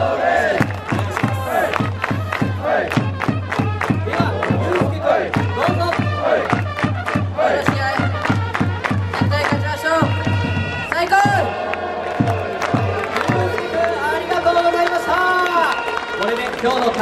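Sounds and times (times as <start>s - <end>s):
crowd chanting and shouting: 0.0s - 16.4s
cheering drum beat: 0.0s - 17.0s.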